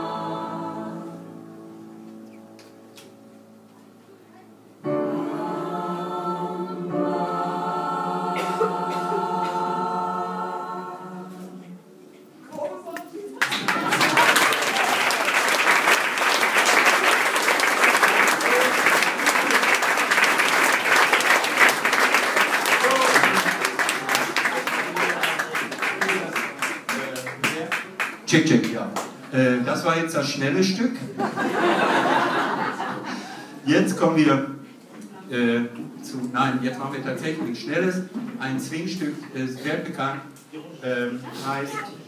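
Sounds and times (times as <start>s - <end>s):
choir holding a chord: 0.0s - 2.1s, 4.8s - 12.3s
applause: 13.4s - 28.3s.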